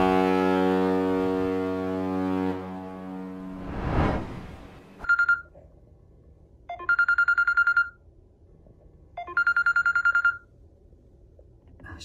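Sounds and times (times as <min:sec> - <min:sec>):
smartphone alarm beeping: 0:05.0 - 0:05.5, 0:06.7 - 0:08.0, 0:09.2 - 0:10.4.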